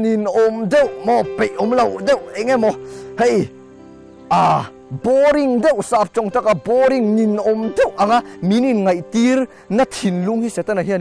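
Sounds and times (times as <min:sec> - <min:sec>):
man speaking: 0:00.0 - 0:03.5, 0:04.3 - 0:11.0
soft background music: 0:00.0 - 0:11.0.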